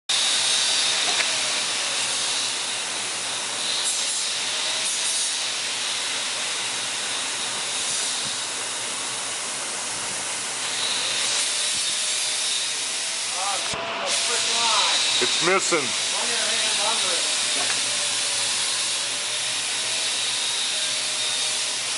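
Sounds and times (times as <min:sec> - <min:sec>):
machine running with loud hiss: 0:00.1 - 0:21.9.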